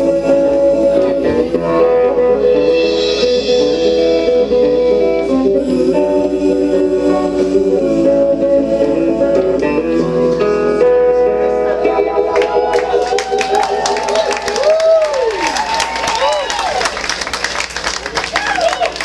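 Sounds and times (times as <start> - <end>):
live band with guitar chords: 0.0 - 16.4.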